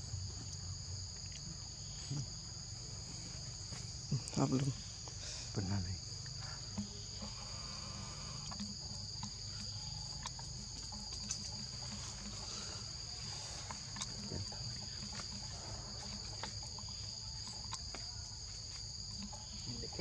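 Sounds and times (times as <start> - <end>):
high-pitched insect drone: 0.0 - 20.0.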